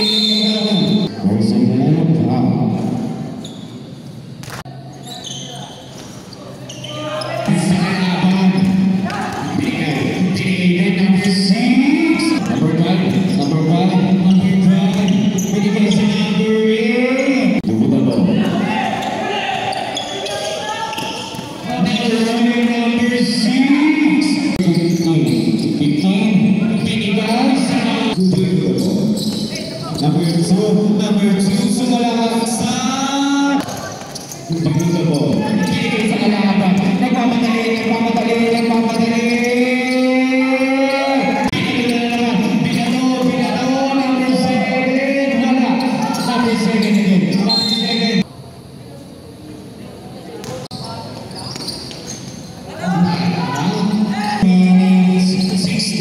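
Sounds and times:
sneakers squeaking: 0.0 - 1.1, 2.7 - 48.3, 49.0 - 56.0
voices echoing: 0.0 - 56.0.

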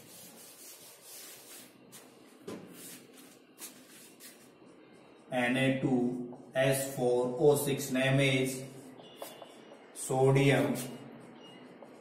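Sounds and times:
duster rubbing whiteboard: 0.0 - 2.1.

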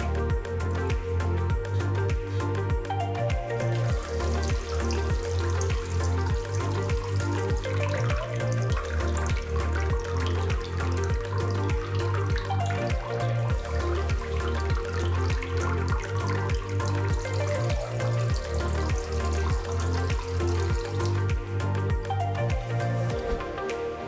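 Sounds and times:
background music with steady beat: 0.0 - 24.0
water splashing into pool: 3.2 - 24.0.

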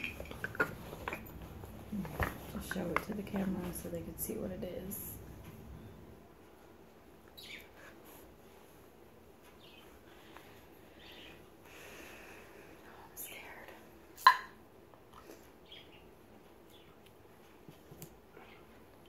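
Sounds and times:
soft rustles: 0.0 - 11.5.

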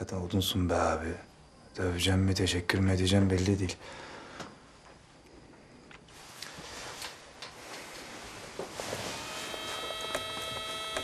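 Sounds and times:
rustling on a bed: 6.1 - 9.9.

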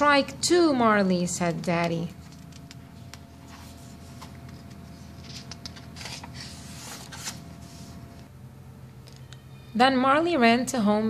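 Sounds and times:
paper page turning: 3.4 - 7.9.

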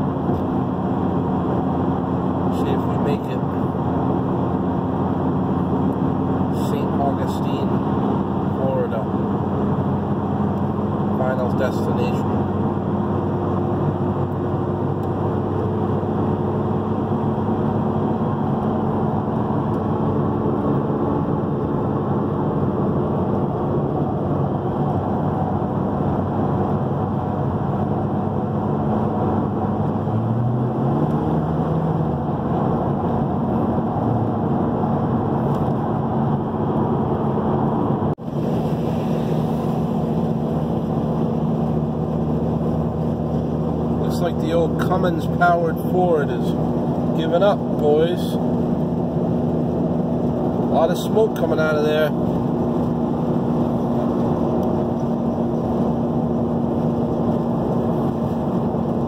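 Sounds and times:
car engine drone in cabin: 0.0 - 59.0
road and wind noise: 0.0 - 59.0.

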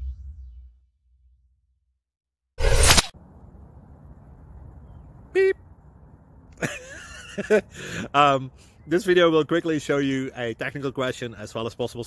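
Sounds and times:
light wind rumble: 3.2 - 8.6.

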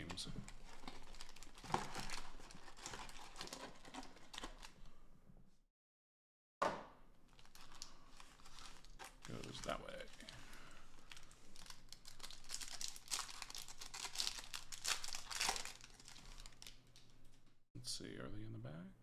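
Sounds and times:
foil wrappers crinkling and tearing: 0.0 - 4.8, 7.3 - 17.4.

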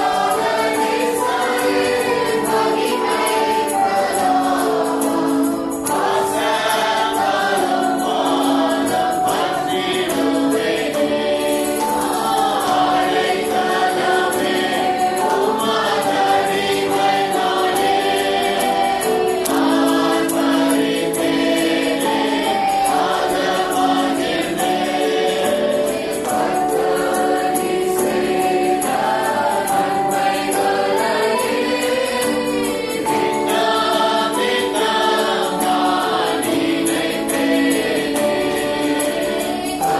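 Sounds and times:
choir singing: 0.0 - 39.9.

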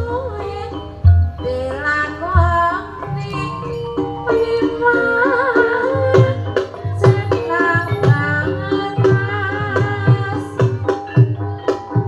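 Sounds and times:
ringing metallophone tones: 0.0 - 12.0
deep drum beats: 1.0 - 12.0
female vocal wavering: 1.4 - 10.4.

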